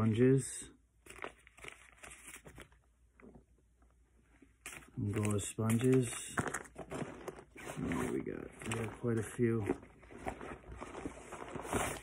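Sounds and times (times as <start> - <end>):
paper packets crinkling: 1.0 - 2.8, 4.7 - 12.0.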